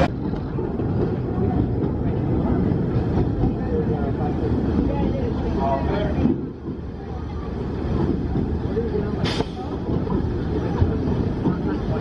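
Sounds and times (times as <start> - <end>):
roller coaster wheels rumbling: 0.0 - 12.0
brief hiss: 9.2 - 9.7.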